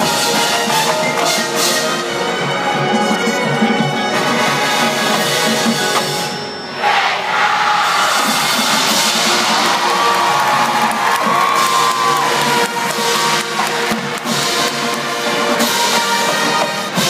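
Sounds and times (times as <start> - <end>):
marching band playing: 0.0 - 17.0
crowd cheering: 6.7 - 16.8.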